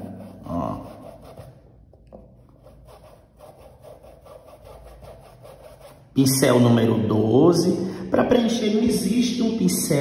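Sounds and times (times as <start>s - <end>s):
paintbrush rubbing on cloth: 0.0s - 1.8s, 2.4s - 6.2s.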